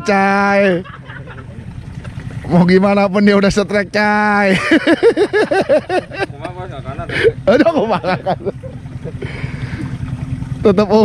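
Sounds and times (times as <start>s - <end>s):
man laughing: 0.5s - 1.6s, 4.4s - 9.9s.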